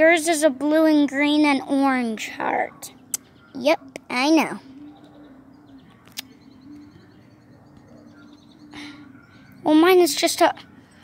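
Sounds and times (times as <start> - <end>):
faint high bird chirps: 2.5 - 11.0.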